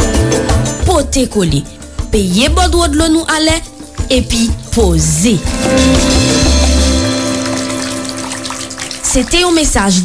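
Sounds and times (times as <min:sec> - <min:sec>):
held musical chord: 0:05.2 - 0:09.4
running water sound effect: 0:05.4 - 0:10.0.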